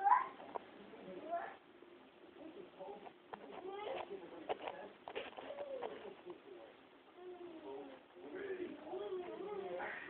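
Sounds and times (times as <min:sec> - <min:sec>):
small child babbling: 0:00.0 - 0:00.4.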